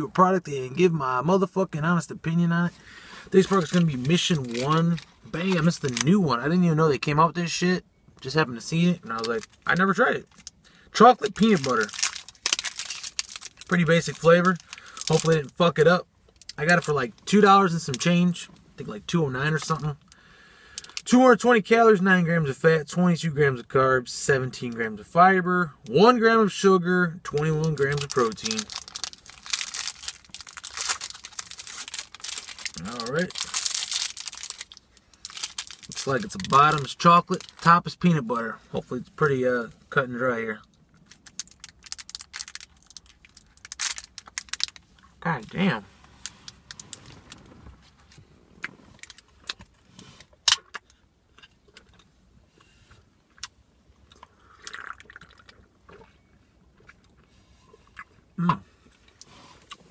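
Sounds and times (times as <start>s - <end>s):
plastic wrapper crinkling: 3.3s - 6.2s, 9.0s - 16.9s, 27.3s - 37.9s, 40.9s - 45.5s, 46.2s - 49.7s
person chewing: 53.3s - 59.9s.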